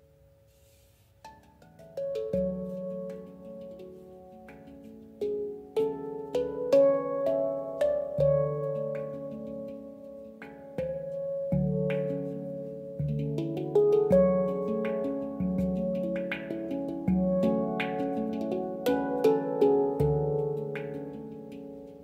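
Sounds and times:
handpan melody: 1.2 - 22.0
deep low handpan notes: 1.3 - 22.0.

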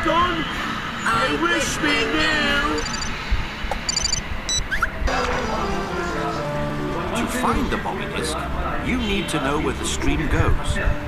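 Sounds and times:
high electronic twinkles and bleeps: 2.7 - 4.9
short rising blips: 2.7 - 5.0.

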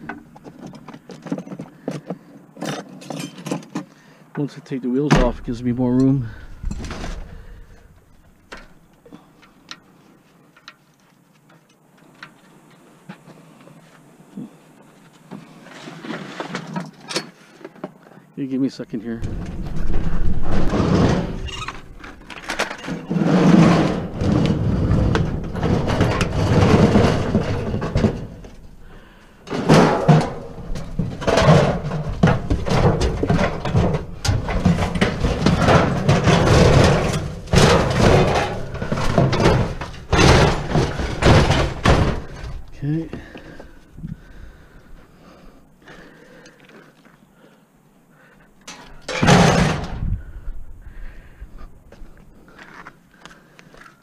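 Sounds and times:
metal grill clattering and scraping: 19.2 - 42.7, 48.7 - 50.1.

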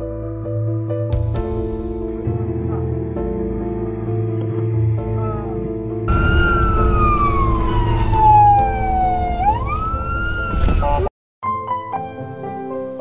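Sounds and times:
background music: 0.0 - 13.0
emergency vehicle siren wailing: 6.1 - 11.1
road noise: 6.1 - 11.1.

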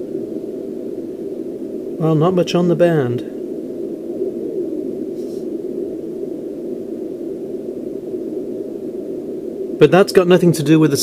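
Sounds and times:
radio band noise hiss: 0.0 - 11.0.

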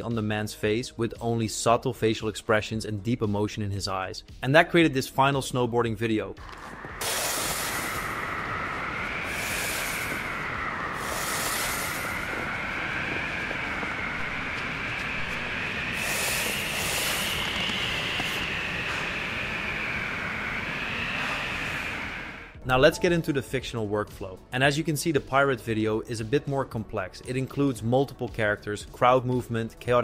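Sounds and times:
surges of hiss: 6.4 - 22.5
howling mountain wind: 6.4 - 22.6
wavering whistle: 6.5 - 22.6.

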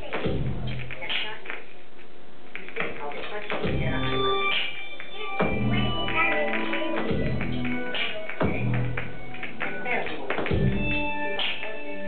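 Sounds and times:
drum kit beat: 0.0 - 1.6, 2.5 - 12.0
sustained synthesizer notes: 3.6 - 12.0.

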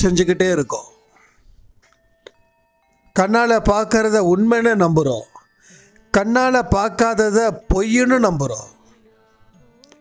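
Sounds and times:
faint bell-like chime: 0.6 - 9.8.

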